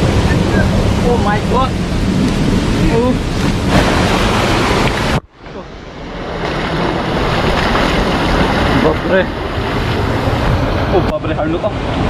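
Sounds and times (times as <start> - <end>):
stream water rushing over rocks: 0.0 - 11.6.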